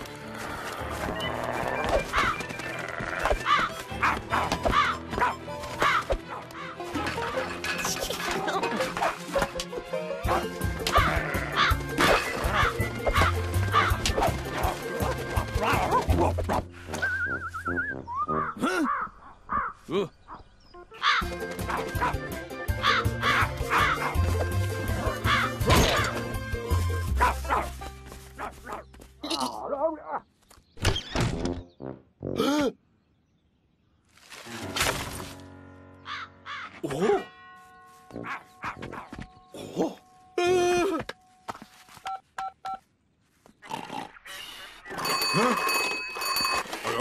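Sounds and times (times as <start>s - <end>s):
background music: 0.0s - 19.2s, 20.6s - 30.1s, 34.4s - 41.6s
crow cawing: 2.1s - 3.8s, 10.9s - 11.8s, 12.4s - 14.0s, 18.8s - 19.8s, 21.0s - 21.3s, 22.8s - 24.2s, 25.1s - 25.6s, 36.0s - 36.8s
man's wordless vocal sounds: 19.9s - 20.2s.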